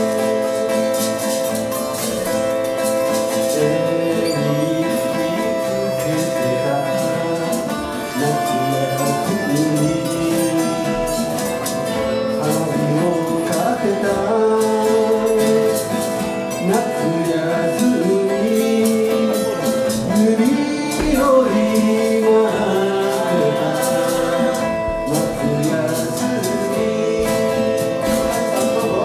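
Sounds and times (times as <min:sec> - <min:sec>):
acoustic guitar strumming: 0:00.0 - 0:29.0
man singing folk song: 0:00.0 - 0:29.0.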